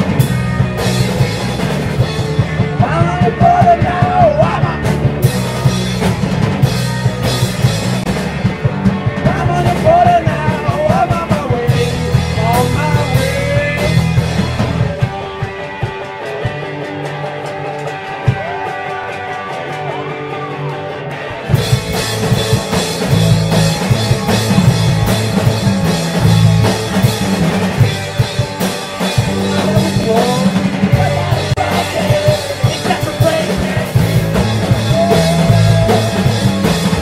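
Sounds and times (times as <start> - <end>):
rock band playing: 0.0 - 37.0
person singing: 2.7 - 5.0, 9.2 - 14.1, 29.2 - 37.0.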